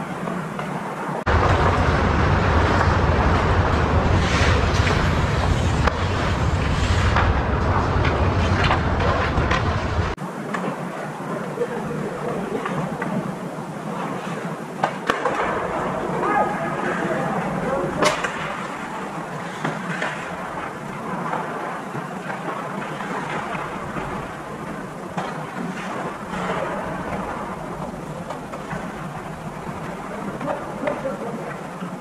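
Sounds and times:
skates scraping ice: 0.0 - 1.8, 2.6 - 32.0
arena noise: 0.0 - 32.0.

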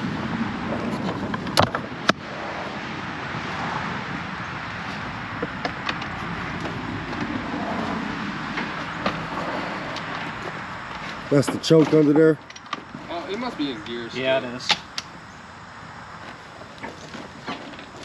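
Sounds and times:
steady rustling noise: 0.0 - 14.2, 16.0 - 18.0.

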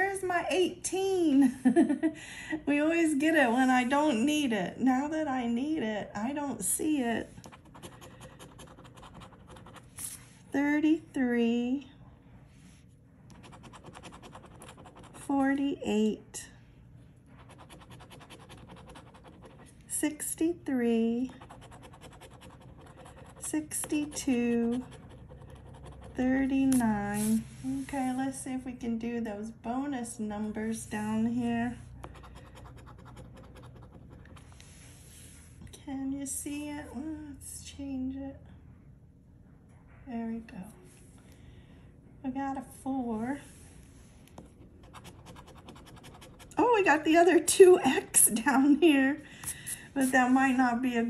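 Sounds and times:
coin scratching lottery ticket: 17.5 - 19.6, 21.4 - 26.2.

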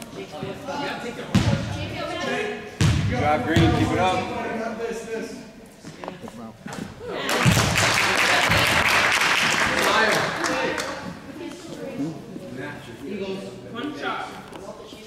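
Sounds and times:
spectators chatting: 0.0 - 15.0
crowd cheering: 7.2 - 10.9.

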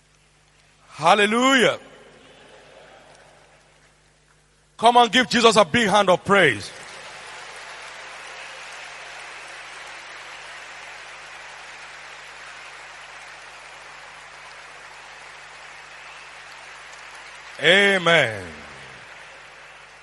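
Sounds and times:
congregation applauding: 4.8 - 20.0.

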